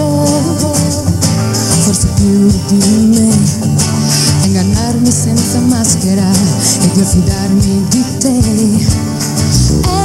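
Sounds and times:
acoustic guitar: 0:00.0 - 0:10.0
live pop band playing: 0:00.0 - 0:10.0
lead vocal singing: 0:04.2 - 0:10.0.

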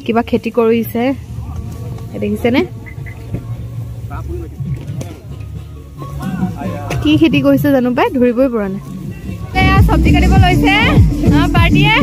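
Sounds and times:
faint scattered voices: 0:00.0 - 0:12.0.

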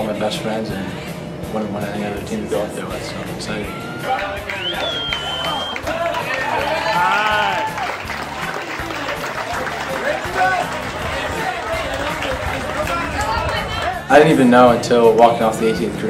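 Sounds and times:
background music: 0:00.0 - 0:16.0
group of people chattering: 0:00.0 - 0:16.0.

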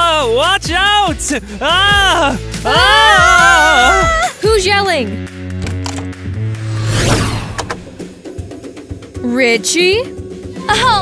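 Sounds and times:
background music: 0:00.0 - 0:11.0
whoosh falling in pitch: 0:06.5 - 0:08.1.

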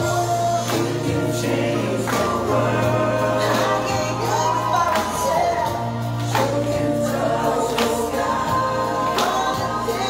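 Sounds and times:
group of voices singing: 0:00.0 - 0:10.0
musical accompaniment with beat: 0:00.0 - 0:10.0.

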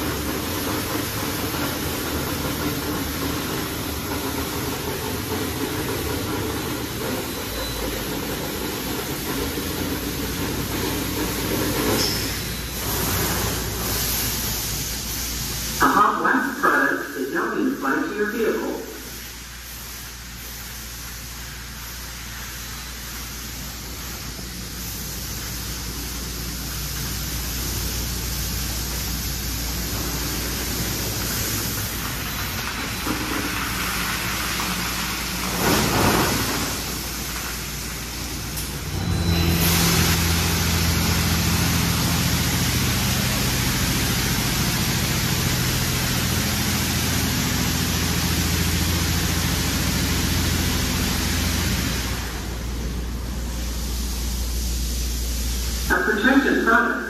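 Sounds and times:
low machine hum: 0:00.0 - 0:57.0
water spray hissing: 0:39.5 - 0:56.7.

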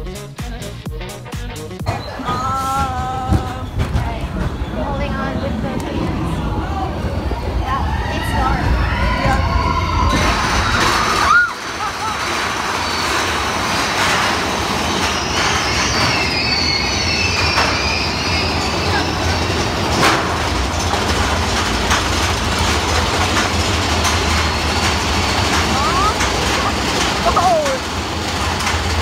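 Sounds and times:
roller coaster running on track: 0:00.1 - 0:29.0.

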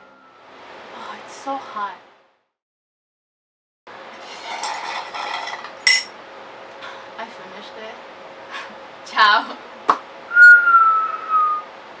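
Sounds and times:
whistled note: 0:10.3 - 0:11.7.

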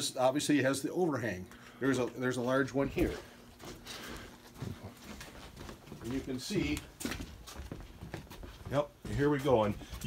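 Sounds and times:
man speaking: 0:00.0 - 0:03.3, 0:06.0 - 0:06.9, 0:08.7 - 0:10.0.

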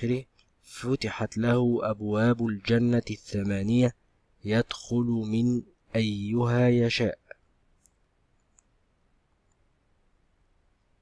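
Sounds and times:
faint computer mouse click: 0:07.8 - 0:08.8, 0:09.4 - 0:09.7.

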